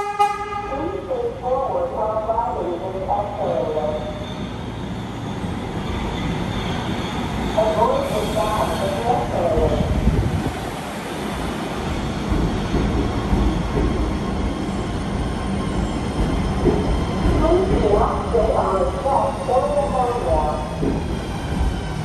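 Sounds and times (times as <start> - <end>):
train wheels rumbling on rails: 3.1 - 22.0.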